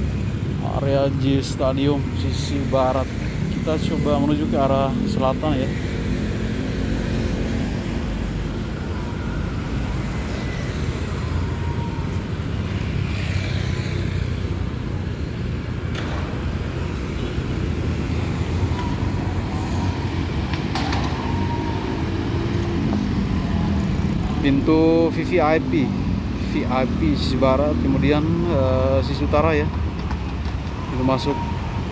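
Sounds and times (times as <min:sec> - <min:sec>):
road traffic rumble: 0:00.0 - 0:31.9.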